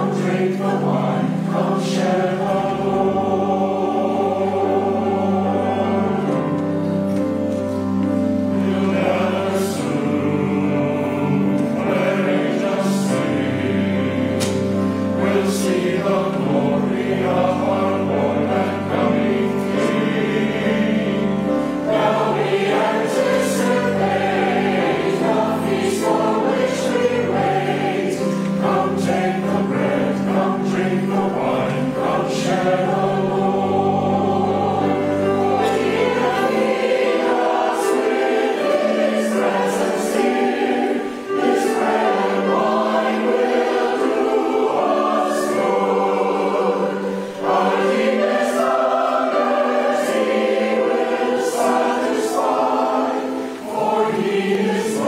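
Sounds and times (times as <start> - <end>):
choir singing a hymn: 0.0 - 55.0.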